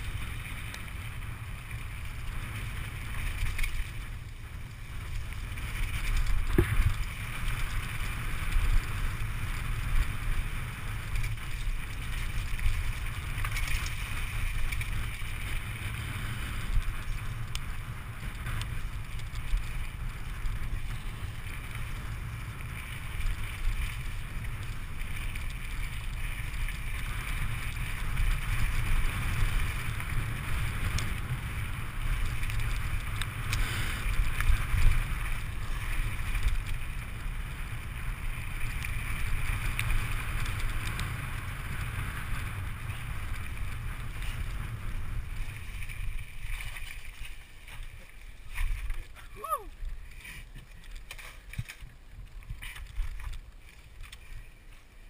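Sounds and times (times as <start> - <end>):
bike tyres rumbling over gravel: 0.0 - 55.0.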